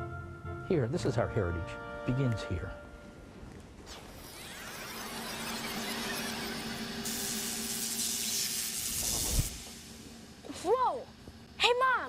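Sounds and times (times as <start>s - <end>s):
steady hum: 2.8s - 12.0s
sweeping buzzing whine: 3.1s - 12.0s
loud electric hissing crackle: 3.8s - 10.8s.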